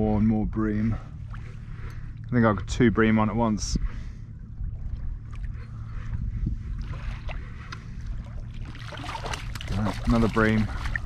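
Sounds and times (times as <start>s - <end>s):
wind rumble on microphone: 0.0s - 11.0s
water lapping against kayak hull: 0.8s - 2.7s, 3.8s - 11.0s
fish splashing at surface: 8.7s - 11.0s.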